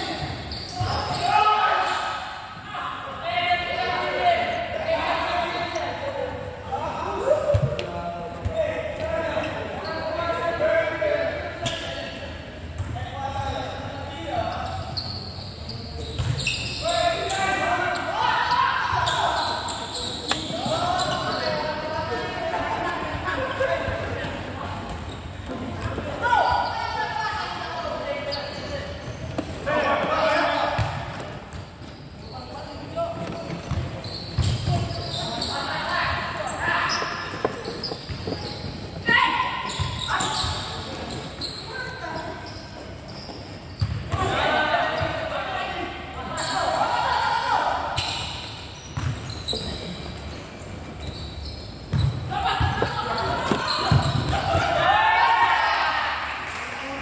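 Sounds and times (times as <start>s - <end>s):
players shouting: 52.3s - 56.3s.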